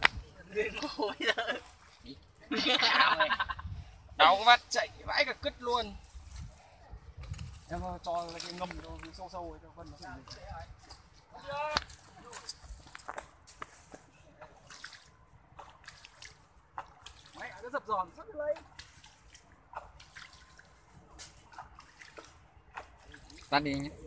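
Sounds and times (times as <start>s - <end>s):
hands splashing in water: 11.7s - 17.6s, 18.6s - 24.0s.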